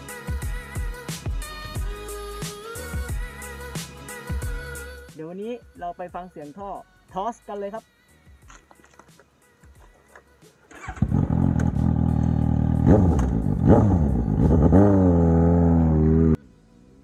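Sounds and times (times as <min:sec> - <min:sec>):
motorcycle engine revving: 0:10.7 - 0:17.0.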